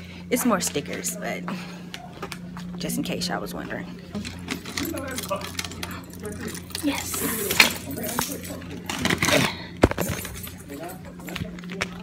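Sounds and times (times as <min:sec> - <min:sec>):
steady low hum: 0:00.0 - 0:12.0
keys jangling: 0:04.2 - 0:11.6.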